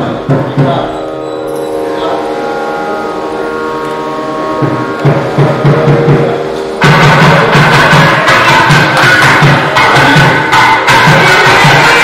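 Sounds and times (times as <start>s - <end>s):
wind instrument long note: 0.9s - 12.0s.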